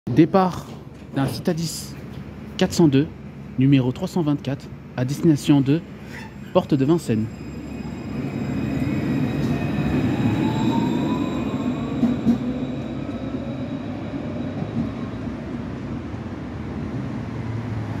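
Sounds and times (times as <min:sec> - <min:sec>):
tram rolling rumble: 0:00.1 - 0:18.0
tram motors whining: 0:04.2 - 0:18.0.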